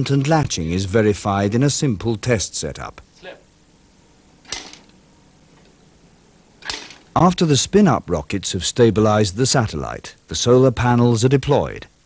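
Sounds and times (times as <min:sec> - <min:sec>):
hinge latch clicking: 0:06.6 - 0:07.1.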